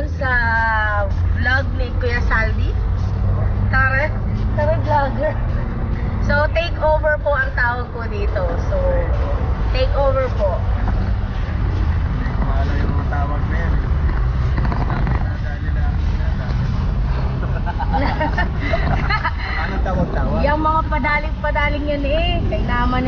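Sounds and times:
voices: 0.0 - 23.0.

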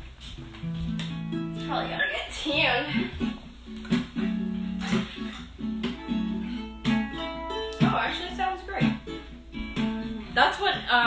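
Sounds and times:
acoustic guitar strummed slowly: 0.4 - 11.0.

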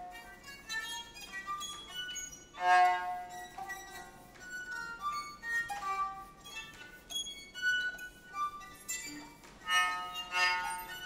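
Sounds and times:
solo violin high bowed notes: 0.0 - 11.0.

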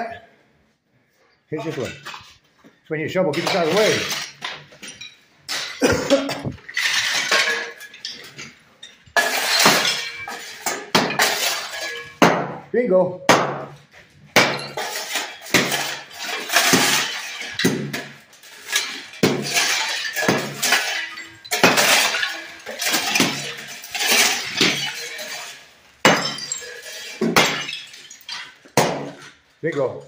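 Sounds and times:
shards clinking and scraping on floor: 1.6 - 12.2, 13.8 - 30.0
hammer cracking ceramic tiles: 13.3 - 29.4.

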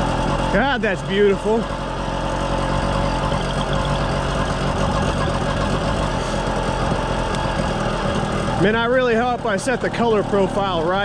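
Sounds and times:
small two-stroke engine running: 0.0 - 11.0.

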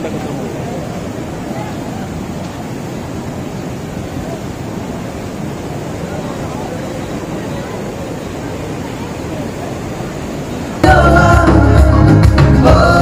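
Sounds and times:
crowd chattering: 0.0 - 13.0
waterfall and river rushing: 0.0 - 13.0.

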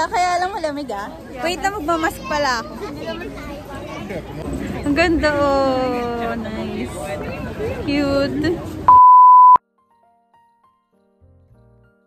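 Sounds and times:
electronic beep: 8.9 - 9.6.

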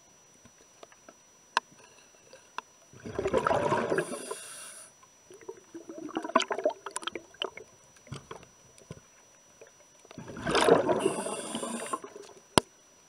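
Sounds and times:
underwater exhaled bubbles gurgling: 2.9 - 4.7, 5.3 - 8.4, 10.1 - 12.5
bubbles crackling and clicking: 3.0 - 4.2, 5.3 - 9.0, 9.6 - 12.7.

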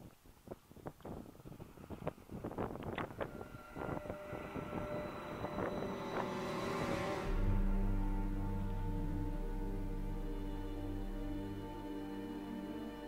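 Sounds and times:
held music notes: 2.3 - 13.0.

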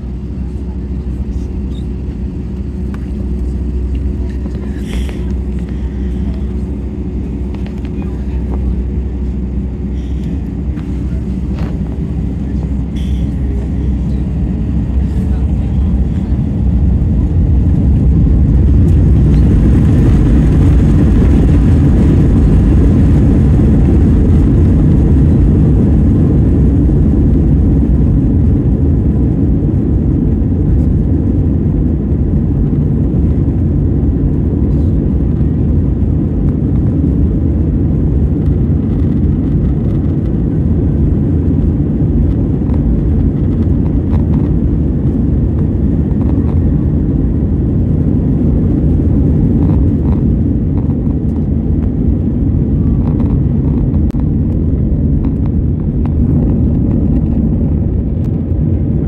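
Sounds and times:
jet engines rumbling at takeoff: 0.0 - 59.0.

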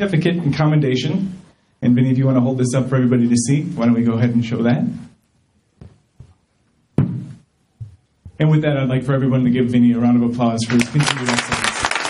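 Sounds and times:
faint microphone taps: 5.8 - 6.4, 7.0 - 8.4
knock on microphone: 7.0 - 8.4.

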